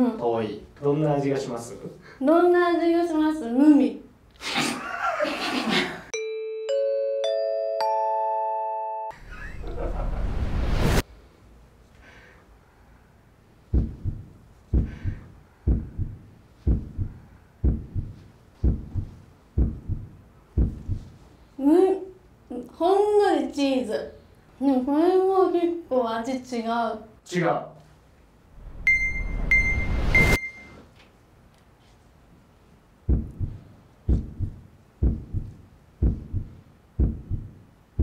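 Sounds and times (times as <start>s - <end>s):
rising noise swell: 9.2s - 11.0s, 28.5s - 30.4s
heartbeat thumps: 13.7s - 21.2s, 33.0s - 38.0s
short high electronic beeps: 28.8s - 30.8s.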